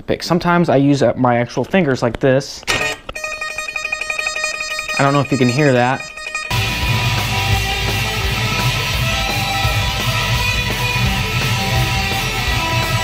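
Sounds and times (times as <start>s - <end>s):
fingerstyle electric guitar lead: 3.0s - 13.0s
backing track with low bass: 4.8s - 13.0s.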